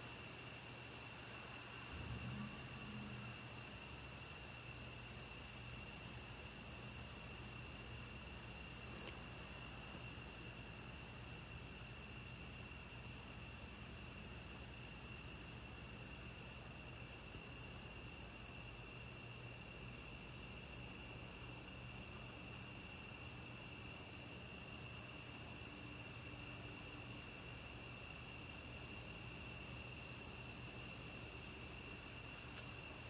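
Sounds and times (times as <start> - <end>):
crickets trilling: 0.0 - 33.0
weak low hum: 1.7 - 4.5.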